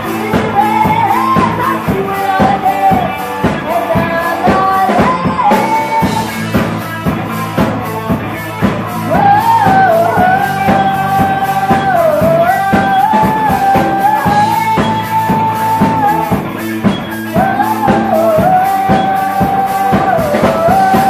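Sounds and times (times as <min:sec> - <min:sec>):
woman singing: 0:00.0 - 0:06.7, 0:08.1 - 0:21.0
bass guitar: 0:00.0 - 0:21.0
drum kit: 0:00.0 - 0:21.0
electric guitar: 0:00.0 - 0:21.0.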